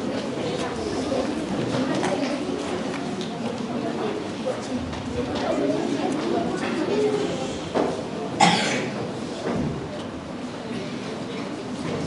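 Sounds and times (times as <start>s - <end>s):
person coughing: 8.4s - 9.0s.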